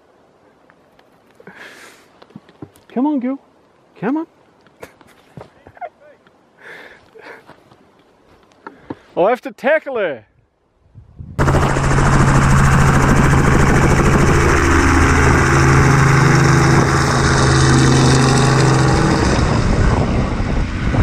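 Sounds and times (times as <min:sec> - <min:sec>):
helicopter rotor chop: 0:11.4 - 0:21.0
low engine hum: 0:11.4 - 0:21.0.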